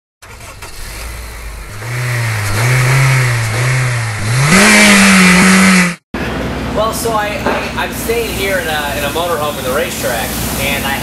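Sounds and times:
engine revving: 0.2s - 6.0s.

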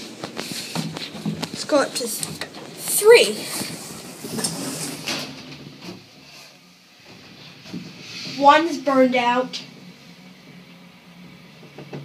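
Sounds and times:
elevator doors sliding closed: 2.0s - 9.1s, 9.7s - 12.0s.

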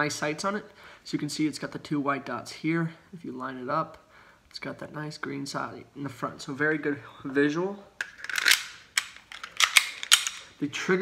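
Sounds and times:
pistol slide scraping: 8.0s - 10.6s.

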